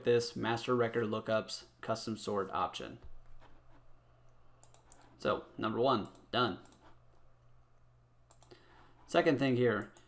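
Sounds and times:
low steady hum: 0.0s - 10.0s
computer mouse clicks: 4.3s - 5.1s, 6.0s - 7.0s, 8.3s - 8.6s.

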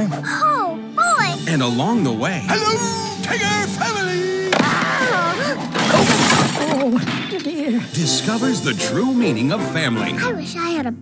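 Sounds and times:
background music: 0.0s - 11.0s
cartoon shattering crash: 4.6s - 7.6s.

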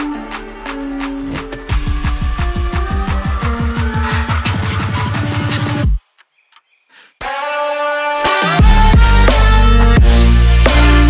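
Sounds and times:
future bass music: 0.0s - 6.0s, 7.2s - 11.0s.

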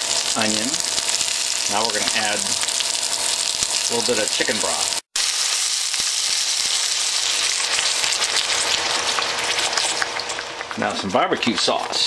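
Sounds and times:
meat sizzling in hot oil: 0.0s - 12.0s.

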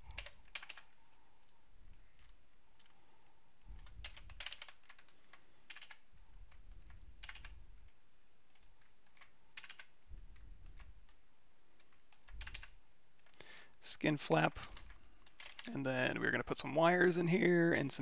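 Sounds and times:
computer keyboard clicks: 0.0s - 1.5s, 3.8s - 7.6s, 8.5s - 9.9s, 11.8s - 12.8s.

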